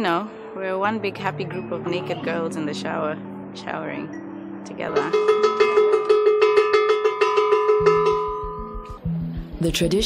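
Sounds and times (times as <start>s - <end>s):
iron bell clanging rapidly: 5.0s - 9.0s.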